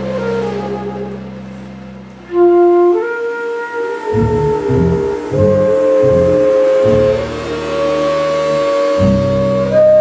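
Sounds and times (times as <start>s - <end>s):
flute holding long notes: 0.0s - 10.0s.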